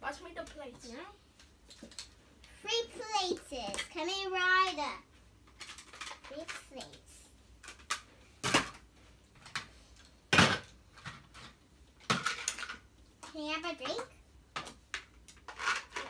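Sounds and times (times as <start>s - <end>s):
plastic toy dishes clattering: 5.5s - 7.0s, 10.4s - 12.9s, 13.8s - 16.0s.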